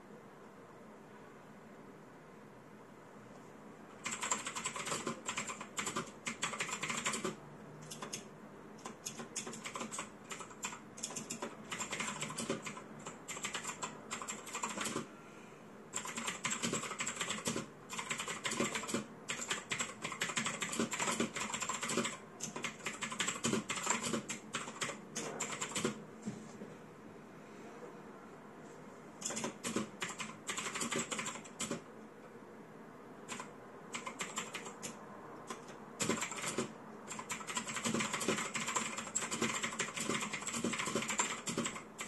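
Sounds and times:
mechanical keyboard typing: 3.9s - 15.1s, 15.9s - 26.0s, 29.2s - 31.9s, 33.2s - 42.0s.

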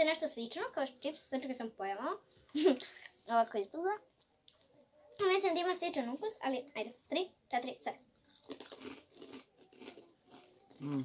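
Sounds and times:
people chewing crunchy snack: 8.1s - 11.0s.

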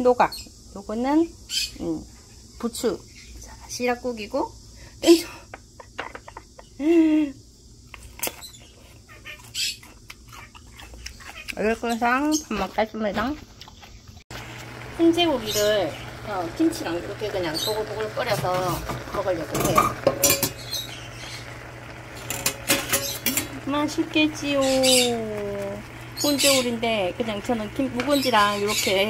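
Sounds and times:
parrot squawk: 9.1s - 10.6s
steady low hum: 9.8s - 29.0s.

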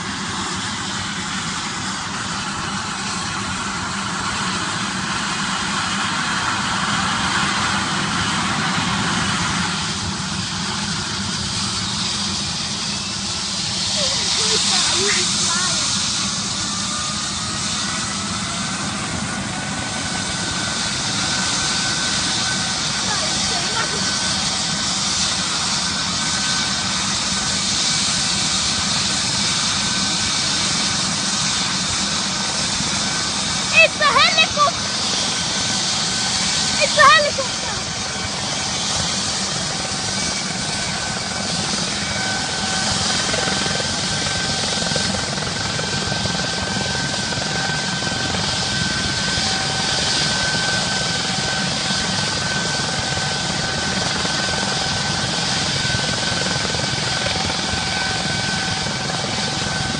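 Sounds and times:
helicopter turbine whine: 0.0s - 59.9s.

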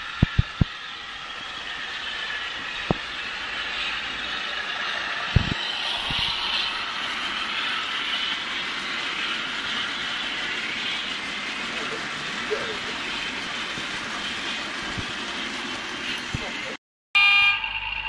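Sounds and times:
model train running: 0.0s - 16.8s.

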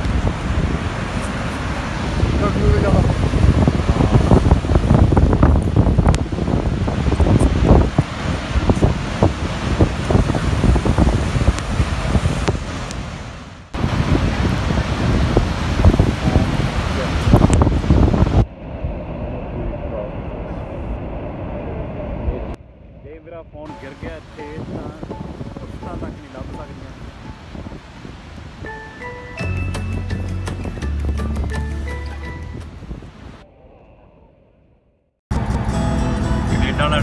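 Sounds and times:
waterfall roaring: 0.0s - 18.4s
wind buffeting microphone: 0.0s - 34.3s.

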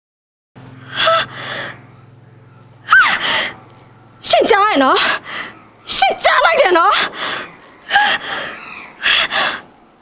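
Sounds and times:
faint low hum: 0.6s - 10.0s
woman speaking: 4.2s - 5.3s, 5.9s - 7.2s.

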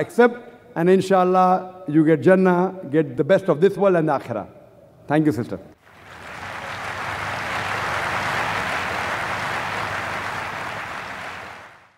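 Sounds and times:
audience applauding: 5.8s - 11.9s.

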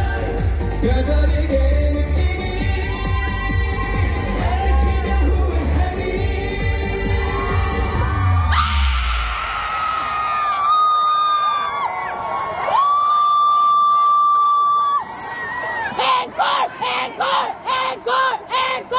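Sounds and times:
crowd cheering and shouting: 0.0s - 18.9s.

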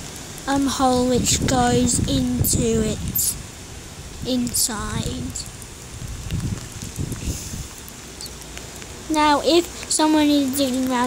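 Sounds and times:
low rumbling on microphone: 0.0s - 7.9s
light rain pattering: 0.0s - 11.0s.

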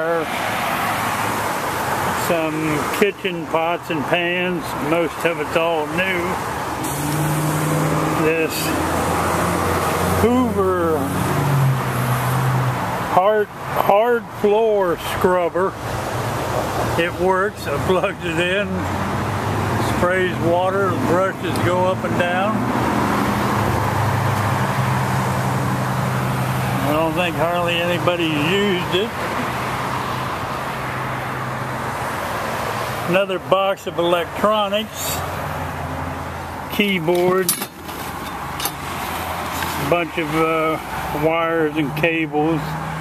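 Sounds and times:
road traffic noise: 0.0s - 43.0s.

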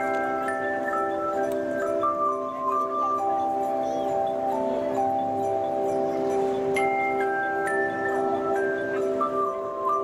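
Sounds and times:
handchimes ringing in a chord: 0.0s - 10.0s.

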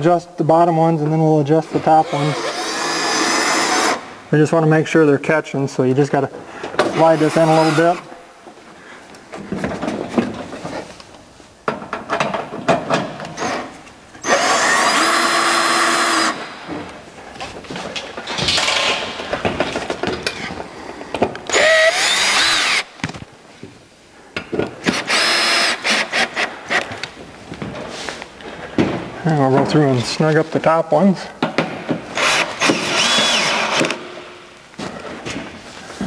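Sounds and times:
cordless drill running: 2.0s - 4.0s, 7.1s - 7.8s, 14.2s - 16.4s, 21.5s - 22.9s, 25.0s - 26.3s, 32.2s - 34.0s.

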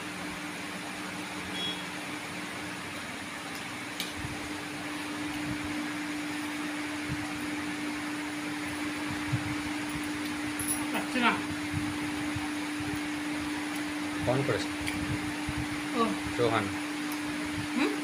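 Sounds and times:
electric fan humming: 0.0s - 18.0s.

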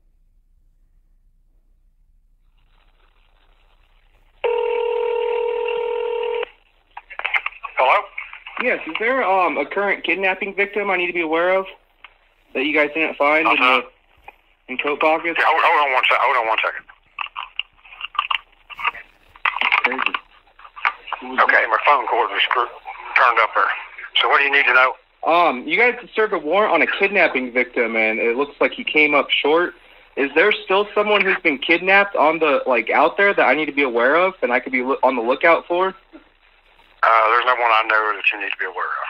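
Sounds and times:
faint phone line hiss: 2.3s - 17.1s, 18.6s - 39.0s
telephone ringback tone: 4.4s - 6.5s
muffled voice: 7.0s - 11.8s, 14.7s - 16.9s, 18.7s - 28.6s, 37.0s - 39.0s.

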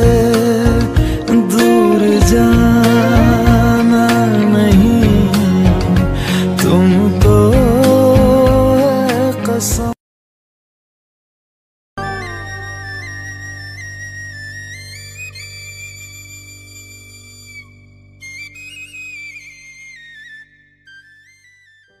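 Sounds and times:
instrumental music: 0.0s - 10.0s, 12.0s - 22.0s.

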